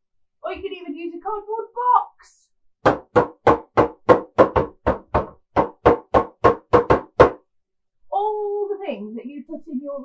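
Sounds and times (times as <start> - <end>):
stick knocking on cardboard box: 2.8 - 7.4.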